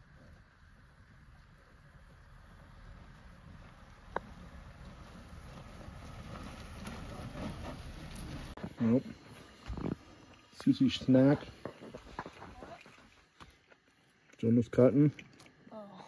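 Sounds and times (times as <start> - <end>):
vehicle engine and tyre rumble: 0.0 - 10.5.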